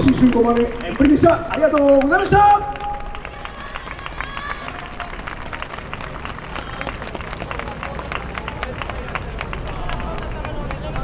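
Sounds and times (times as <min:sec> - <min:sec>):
audience clapping: 0:00.0 - 0:11.0
distant shouting voices: 0:01.2 - 0:11.0.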